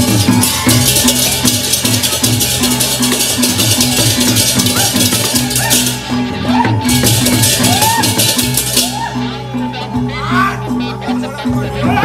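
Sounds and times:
high shimmering metallophones: 0.0 - 12.0.

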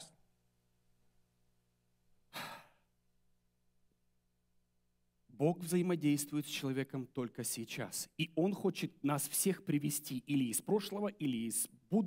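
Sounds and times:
man sighing: 2.3 - 2.9.

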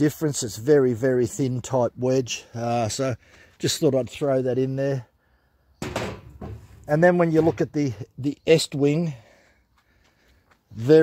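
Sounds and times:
axes clunking on table: 5.8 - 6.8.

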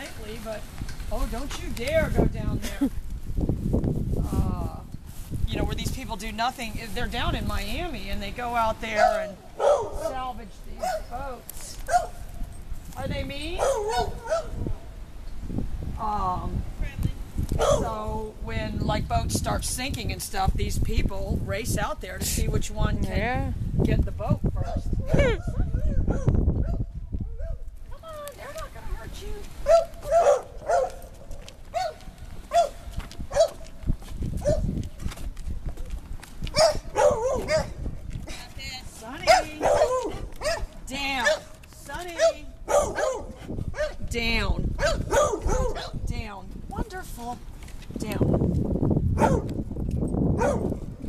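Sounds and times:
wind noise on microphone: 0.0 - 51.0
dog barking: 9.0 - 11.1, 11.9 - 12.2, 13.6 - 14.6, 17.6 - 18.0, 26.1 - 27.6, 29.6 - 31.1, 31.7 - 33.6, 34.4 - 34.7, 36.5 - 37.8, 39.2 - 41.5, 42.2 - 44.0, 44.8 - 46.0, 49.2 - 49.5, 50.4 - 50.8
footsteps on wooden boards: 29.4 - 39.3.

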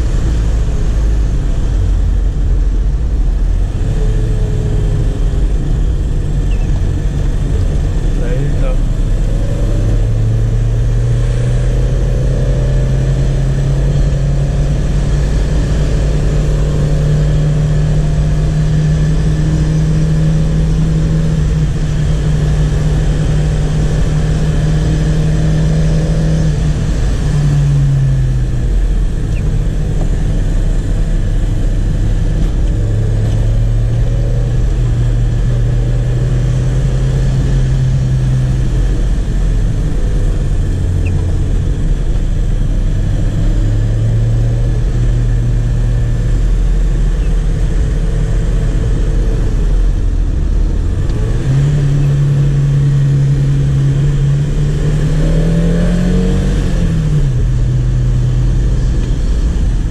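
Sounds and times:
car engine from inside cabin: 0.0 - 59.9.

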